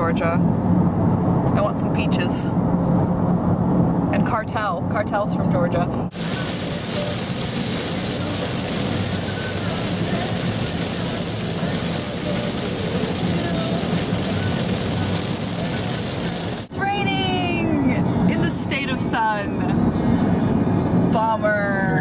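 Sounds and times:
road noise inside car: 0.0s - 22.0s
heavy rain on car: 6.1s - 16.7s.

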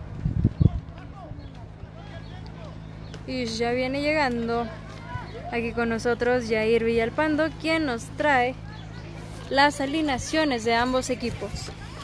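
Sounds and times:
distant voices calling out: 0.0s - 12.0s.

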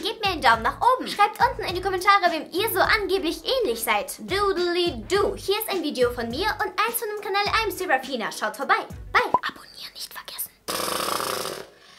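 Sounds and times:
girl whispering and speaking: 9.1s - 10.7s.

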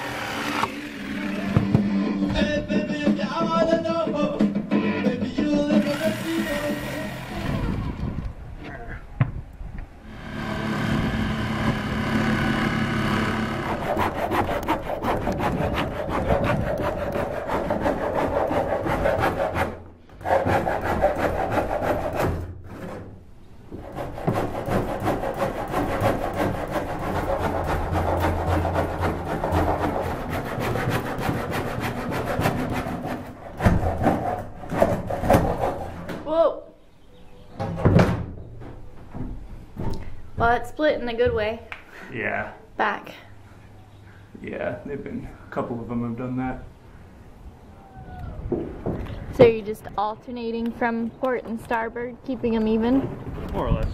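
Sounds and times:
tool rasping wood: 0.0s - 1.7s, 5.8s - 7.7s, 10.1s - 23.0s, 23.7s - 36.0s.

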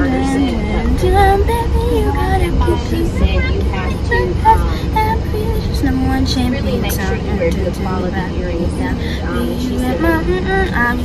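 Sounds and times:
car driving rumble: 0.0s - 11.0s
girl speaking: 2.8s - 4.7s.

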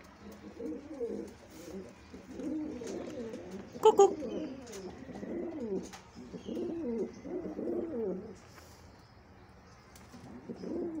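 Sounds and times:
pigeon cooing: 0.2s - 8.4s, 10.3s - 11.0s.

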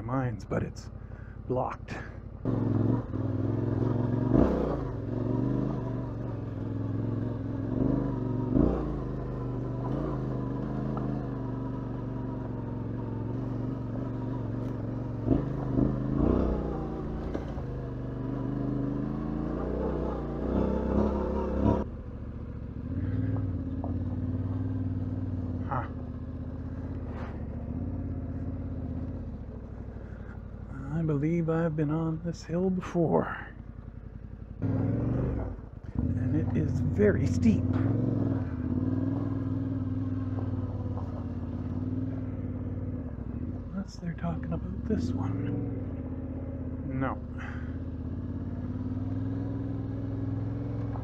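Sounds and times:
motorcycle engine running: 0.0s - 51.0s
tyres on loose gravel: 40.2s - 42.3s.

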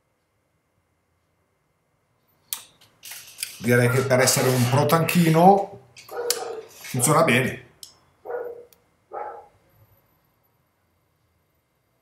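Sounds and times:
short bark-like call: 6.1s - 6.8s.

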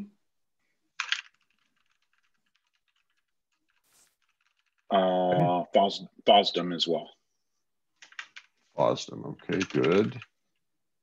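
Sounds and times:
keyboard typing: 8.0s - 8.5s, 9.4s - 10.4s.

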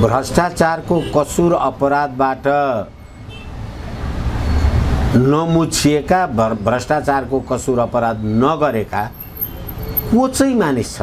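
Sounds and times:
road vehicle rumble: 0.0s - 11.0s.

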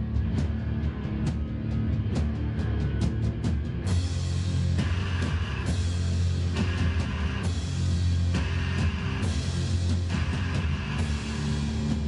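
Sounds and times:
drums: 0.0s - 12.0s
rock band playing live: 0.0s - 12.0s
low guitar and bass note: 3.8s - 12.0s.

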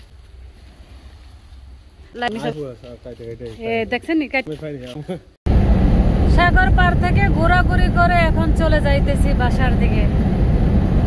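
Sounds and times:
wind buffeting microphone: 5.5s - 11.0s.

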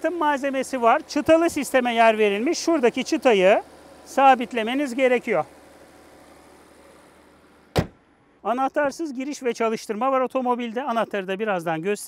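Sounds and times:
car bonnet slamming shut: 7.7s - 8.1s.

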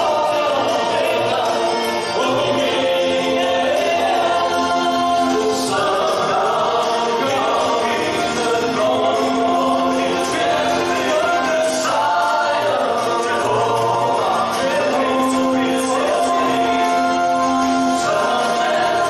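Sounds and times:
men singing gospel in harmony: 0.0s - 19.0s.

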